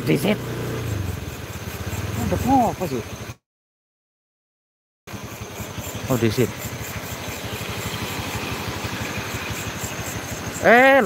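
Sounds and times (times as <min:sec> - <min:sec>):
motorcycle engine running: 0:00.0 - 0:03.4, 0:05.1 - 0:11.0.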